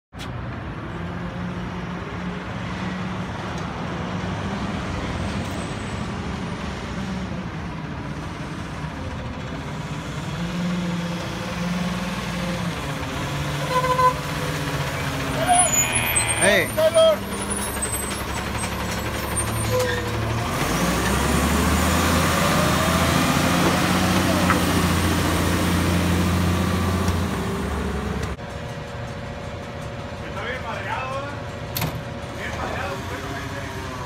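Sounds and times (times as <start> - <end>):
garbage truck diesel engine: 0.2 - 34.0
brief high squeals: 15.4 - 18.0.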